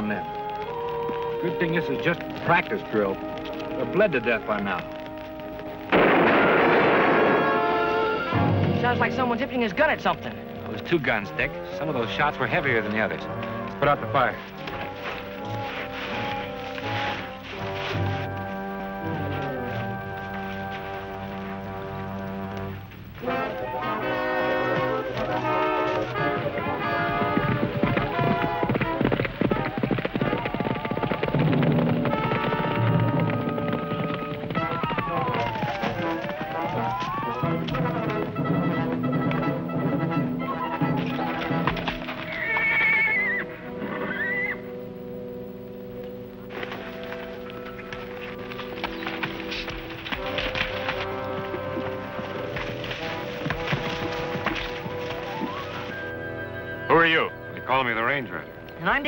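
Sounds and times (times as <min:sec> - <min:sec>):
horses galloping: 0:00.0 - 0:59.0
orchestral western music: 0:00.0 - 0:59.0
horse whinnying: 0:07.4 - 0:08.5, 0:23.2 - 0:44.8.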